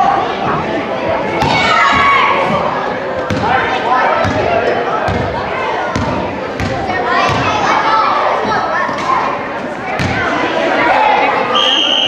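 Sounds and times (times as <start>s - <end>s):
voices echoing in gymnasium: 0.0s - 12.0s.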